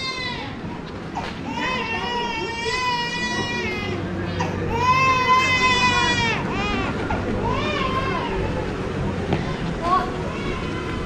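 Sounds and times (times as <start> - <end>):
small child crying: 0.0 - 0.6, 1.5 - 8.6, 9.5 - 11.0.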